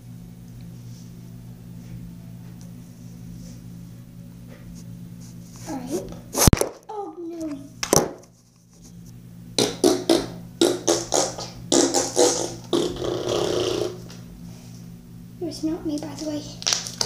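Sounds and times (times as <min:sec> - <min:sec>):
slime popping and crackling: 0:16.6 - 0:17.0.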